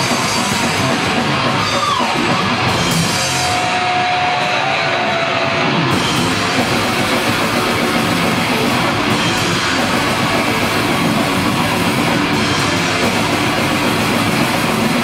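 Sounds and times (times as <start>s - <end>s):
distorted electric guitars: 0.0s - 15.0s
drum kit: 0.0s - 15.0s.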